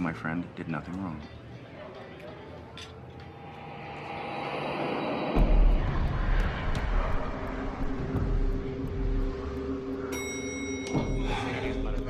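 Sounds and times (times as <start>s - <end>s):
high ringing tone: 3.2s - 6.4s, 10.0s - 11.2s.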